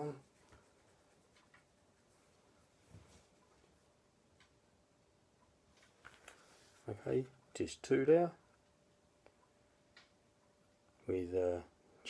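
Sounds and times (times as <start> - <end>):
person speaking: 0.0 - 0.5, 6.7 - 8.4, 11.0 - 11.8.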